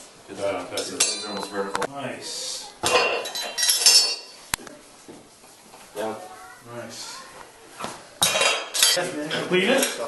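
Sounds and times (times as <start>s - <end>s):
metal clinking and jangling: 3.2s - 4.3s.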